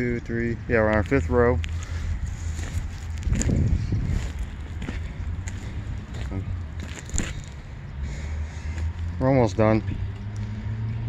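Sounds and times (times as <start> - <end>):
wind buffeting microphone: 0.6 - 7.6.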